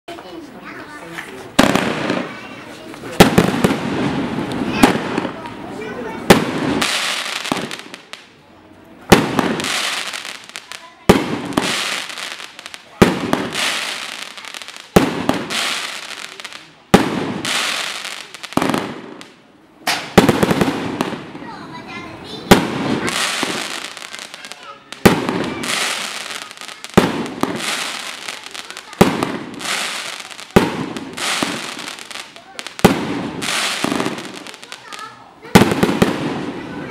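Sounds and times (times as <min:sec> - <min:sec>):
firework reports with hiss: 0:01.4 - 0:08.4, 0:09.0 - 0:21.5, 0:22.2 - 0:36.9.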